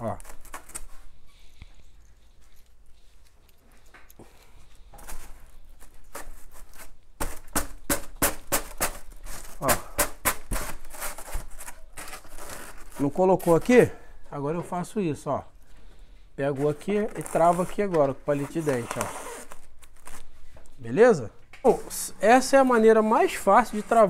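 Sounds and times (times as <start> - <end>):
foam scraping against foam and metal: 5.0 - 13.9, 16.4 - 20.3, 22.3 - 24.0.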